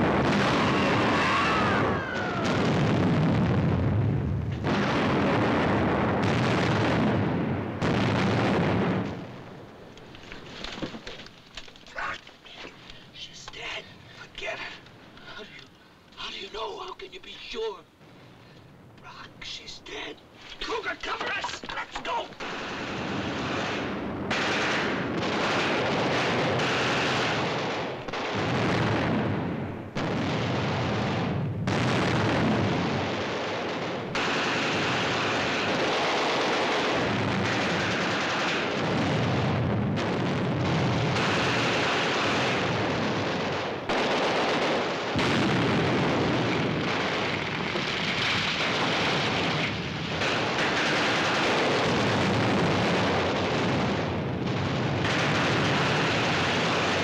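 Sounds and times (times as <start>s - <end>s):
explosions: 0.0s - 9.5s, 22.4s - 57.0s
gunfire: 22.1s - 57.0s.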